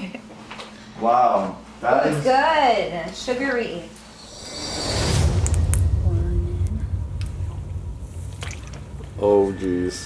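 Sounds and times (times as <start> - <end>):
deep rumble: 4.0 - 10.0
oil bubbling and crackling: 7.2 - 9.3.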